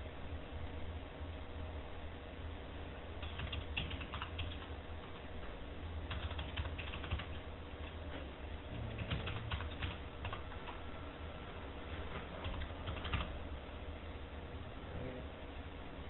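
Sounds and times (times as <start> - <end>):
steady low hum: 0.0 - 16.0
typing on computer keyboard: 3.2 - 5.2, 6.1 - 7.4, 8.8 - 10.8, 12.4 - 13.4.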